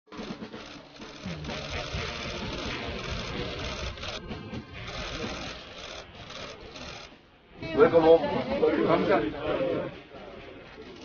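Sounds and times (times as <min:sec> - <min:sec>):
camera shutters clicking rapidly: 0:00.1 - 0:04.2, 0:04.8 - 0:07.1.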